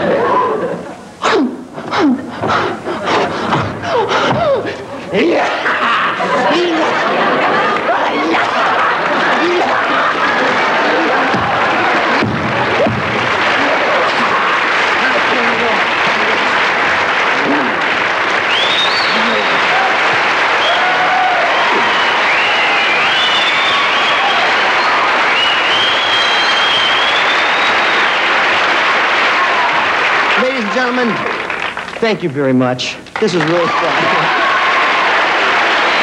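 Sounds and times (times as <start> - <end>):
audience applauding and cheering: 3.0 - 36.0
high whistles: 18.5 - 19.7, 20.6 - 28.3.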